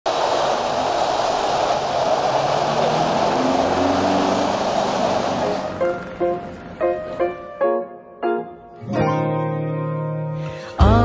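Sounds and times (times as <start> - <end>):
city road traffic: 0.0 - 7.6
guitar and piano music: 5.4 - 11.0.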